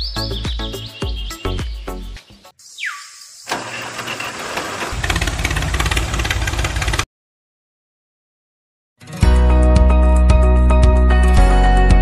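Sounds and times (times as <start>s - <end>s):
engine throbbing: 3.5s - 7.0s.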